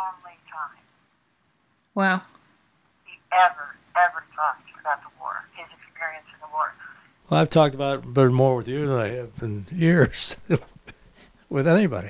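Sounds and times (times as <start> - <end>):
speech over telephone: 0.0 - 0.8, 3.1 - 10.6, 11.5 - 12.0.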